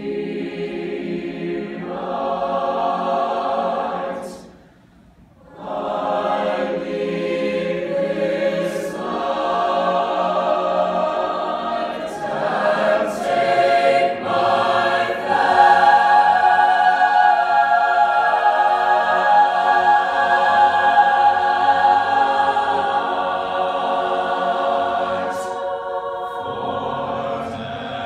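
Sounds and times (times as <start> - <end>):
choir singing a cappella: 0.0 - 4.7, 5.4 - 28.0.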